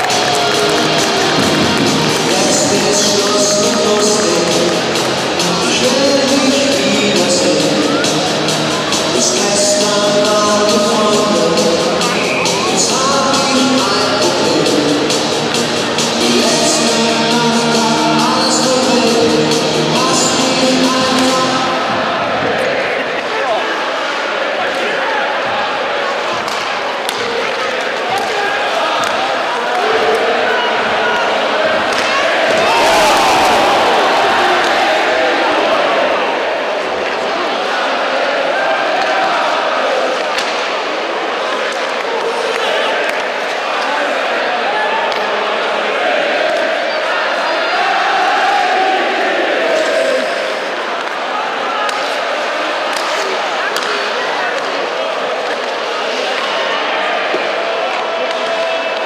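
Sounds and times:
crowd voices: 0.0s - 59.0s
sharp clacks of sticks and puck: 26.3s - 28.4s, 40.2s - 40.8s, 51.0s - 51.2s, 51.8s - 52.2s, 52.8s - 54.8s, 55.4s - 56.6s, 57.3s - 59.0s.

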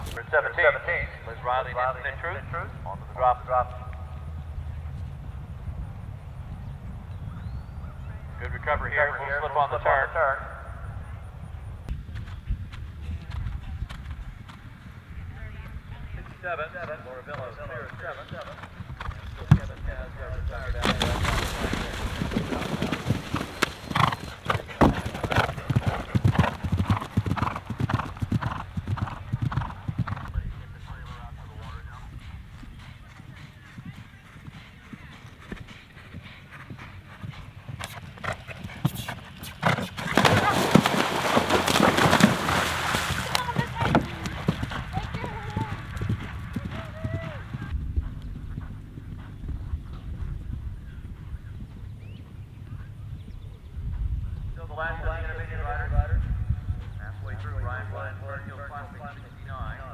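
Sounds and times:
galloping hoofbeats: 11.9s - 52.8s
horses splashing in water: 20.8s - 28.8s, 37.8s - 46.6s.

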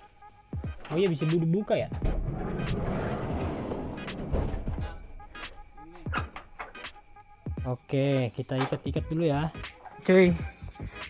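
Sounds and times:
sliding van door rolling open: 2.0s - 4.9s.

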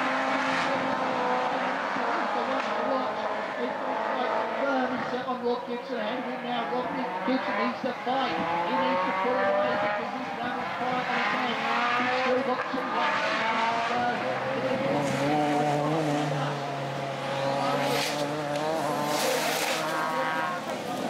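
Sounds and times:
racing car engines revving: 0.0s - 21.0s.

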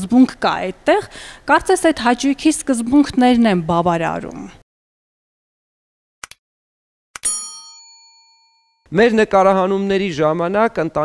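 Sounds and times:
bright bell ding: 7.2s - 8.8s.

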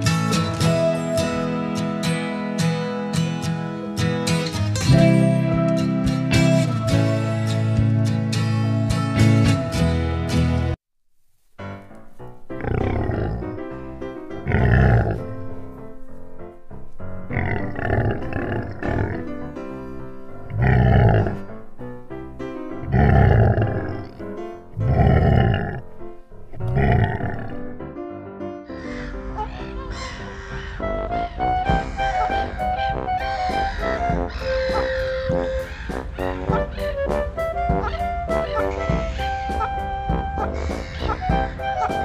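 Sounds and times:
background music: 0.0s - 10.8s, 11.6s - 42.0s
lion roaring: 12.6s - 13.6s, 14.4s - 15.3s, 17.3s - 19.4s, 20.4s - 21.5s, 22.8s - 25.9s, 26.5s - 27.7s.

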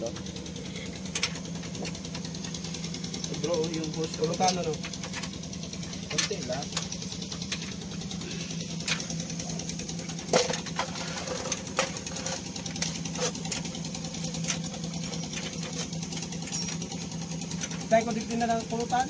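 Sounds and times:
pulsing machine hum: 0.0s - 19.0s
metallic clinks of hand tools: 16.4s - 17.0s.

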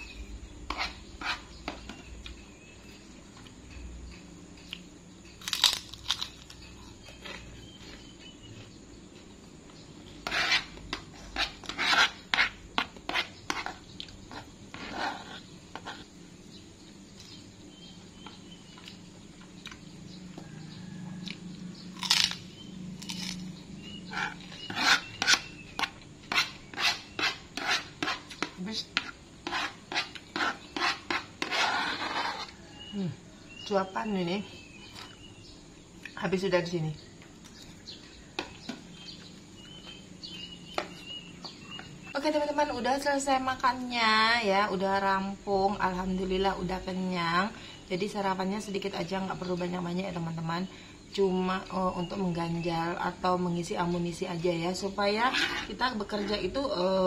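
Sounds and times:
metal spoon scraping plastic bowl: 10.2s - 16.0s, 23.9s - 32.9s, 55.0s - 56.8s.

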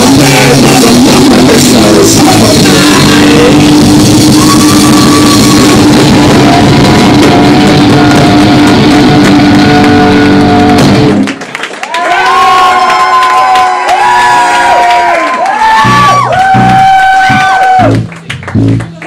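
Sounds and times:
live rock band playing: 0.0s - 11.4s, 15.9s - 19.0s
audience cheering and shouting: 0.0s - 18.1s.

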